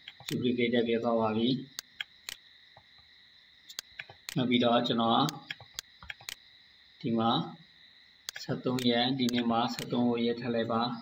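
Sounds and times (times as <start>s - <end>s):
computer mouse clicks: 0.0s - 0.4s, 1.8s - 2.9s, 3.7s - 4.4s, 5.2s - 6.4s, 8.3s - 10.0s
faint high-pitched whine: 0.0s - 11.0s.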